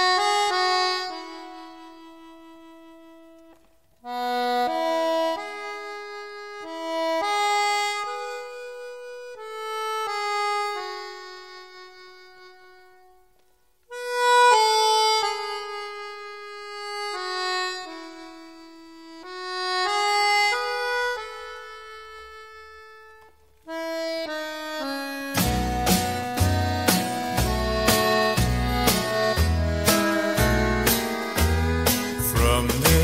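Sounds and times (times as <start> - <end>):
slow solo instrumental melody: 0.0 - 33.0.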